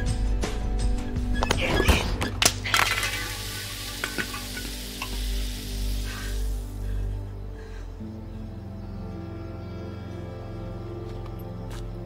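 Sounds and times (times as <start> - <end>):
drink gushing with a hiss: 2.8 - 6.8.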